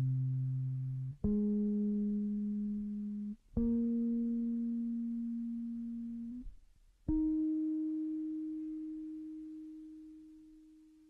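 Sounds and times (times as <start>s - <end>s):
electric bass guitar notes: 0.0s - 6.5s, 7.1s - 10.5s.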